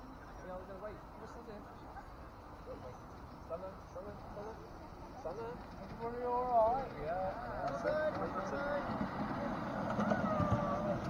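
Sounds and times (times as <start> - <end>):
faint voices: 0.0 - 11.0
train wheels rumbling on rails: 4.9 - 11.0.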